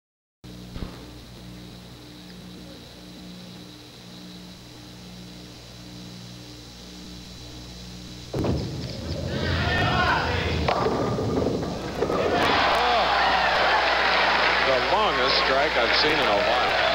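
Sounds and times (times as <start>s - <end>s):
faint hum: 0.4s - 16.9s
bowling ball rolling rumble: 8.3s - 14.6s
crowd voices: 9.3s - 10.9s, 11.5s - 16.9s
crowd cheering: 9.3s - 16.9s
bowling ball thud on lane: 10.3s - 12.6s.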